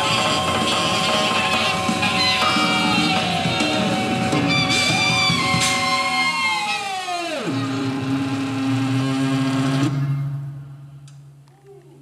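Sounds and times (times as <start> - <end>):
live band tones sliding down: 0.0 - 10.7.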